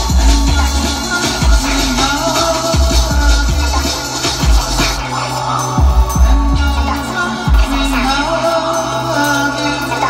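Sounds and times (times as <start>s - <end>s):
heavy bass kicks: 0.0s - 2.2s, 2.8s - 5.0s, 5.8s - 8.2s
electronic dance music: 0.0s - 10.0s.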